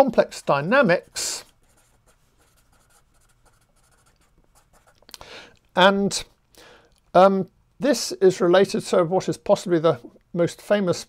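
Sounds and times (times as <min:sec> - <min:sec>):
pen scratching on paper: 0:01.0 - 0:05.0.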